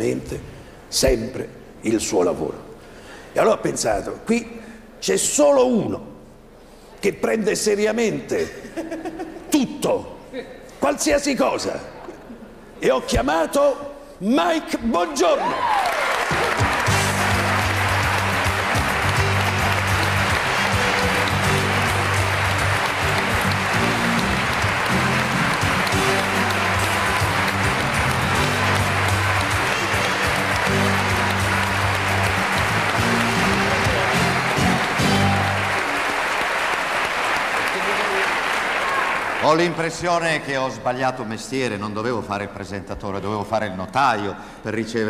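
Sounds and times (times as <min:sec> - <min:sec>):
studio audience applauding: 0:15.2 - 0:40.4
entrance music with pulsing bass: 0:16.6 - 0:35.6.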